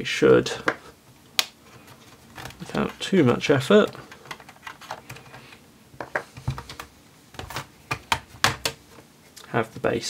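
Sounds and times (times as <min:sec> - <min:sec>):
plastic clips snapping: 0:00.6 - 0:01.6.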